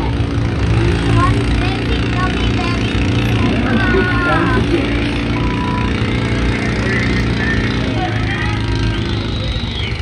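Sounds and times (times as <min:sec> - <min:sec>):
low engine hum: 0:00.0 - 0:10.0
people talking: 0:00.8 - 0:09.7.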